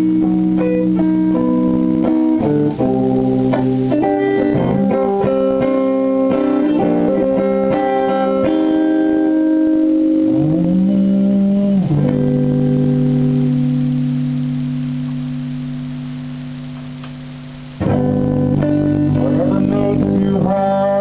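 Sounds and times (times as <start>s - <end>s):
electric guitar playing: 0.0s - 21.0s.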